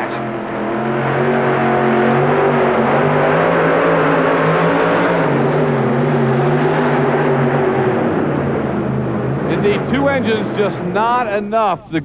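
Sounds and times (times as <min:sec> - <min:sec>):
tractor engines at full throttle: 0:00.0 - 0:12.0.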